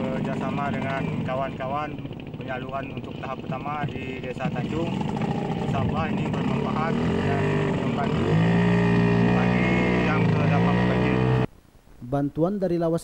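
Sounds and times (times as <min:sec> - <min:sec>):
speedboat engine running: 0:00.0 - 0:11.5.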